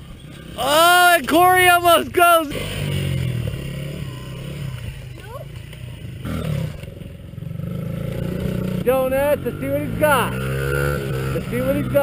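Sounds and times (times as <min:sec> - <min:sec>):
dirt bike engines running: 0:00.0 - 0:12.0.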